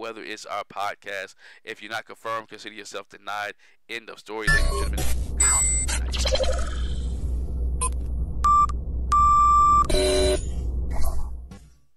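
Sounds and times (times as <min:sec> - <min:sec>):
high electronic beeps: 0:04.5 - 0:07.0, 0:07.8 - 0:10.5
low synth drone: 0:04.5 - 0:11.5.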